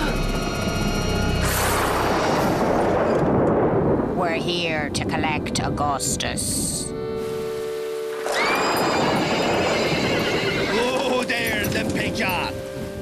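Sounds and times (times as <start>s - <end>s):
horse whinnying: 8.2s - 11.2s.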